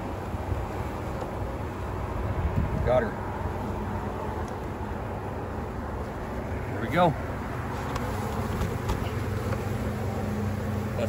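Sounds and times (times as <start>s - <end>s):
honeybees buzzing: 3.2s - 11.0s.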